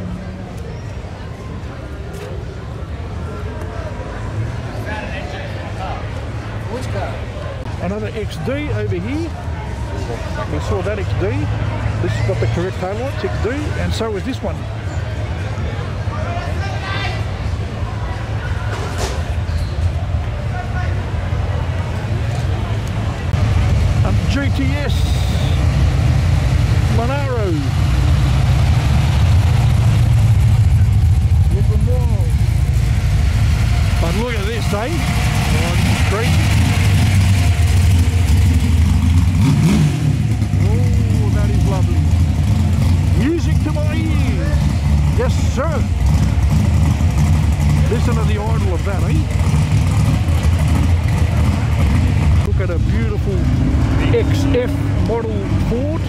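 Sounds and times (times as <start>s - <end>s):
loud car engine rumbling: 0.0s - 56.0s
people's voices: 0.0s - 56.0s.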